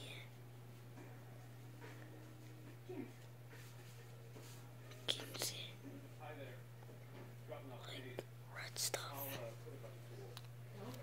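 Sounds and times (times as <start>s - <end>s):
person whispering: 0.0s - 0.4s, 5.0s - 5.9s, 7.7s - 9.6s.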